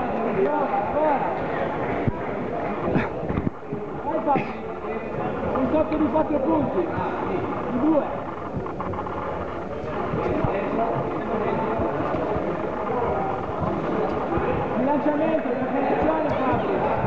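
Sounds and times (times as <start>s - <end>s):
crowd babble: 0.0s - 17.0s.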